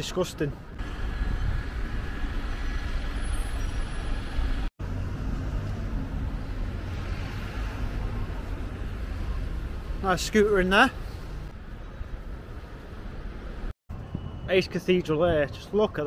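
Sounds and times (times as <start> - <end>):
city traffic rumble: 0.0 - 16.0.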